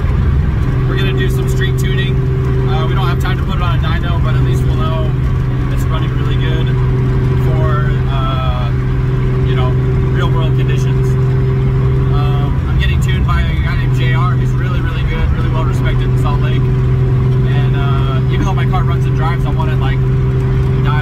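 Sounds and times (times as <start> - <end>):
car engine and road hum: 0.0 - 21.0
man talking: 0.8 - 6.8, 7.4 - 8.8, 9.4 - 11.2, 12.1 - 16.7, 17.4 - 20.1, 20.8 - 21.0.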